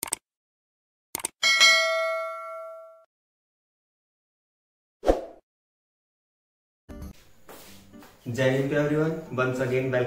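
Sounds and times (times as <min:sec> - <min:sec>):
bright bell ding: 0:01.4 - 0:03.1.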